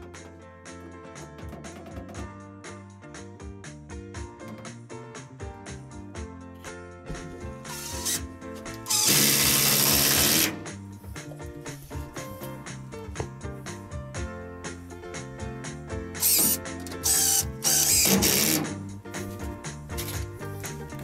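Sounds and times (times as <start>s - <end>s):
background music: 0.0s - 21.0s
cordless drill driving screws: 7.7s - 8.2s, 8.8s - 10.6s, 16.2s - 18.6s.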